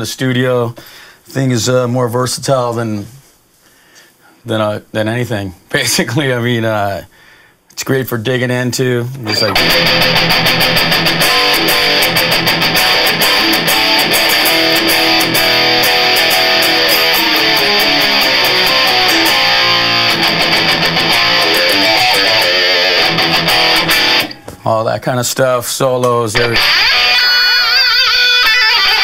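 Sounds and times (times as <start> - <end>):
electric guitar riffs through amp: 9.2 - 24.5, 26.4 - 29.0.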